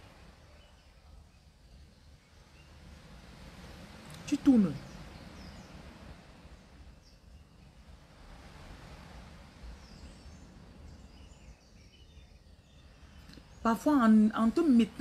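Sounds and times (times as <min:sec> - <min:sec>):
faint steady background noise: 0:00.0 - 0:15.0.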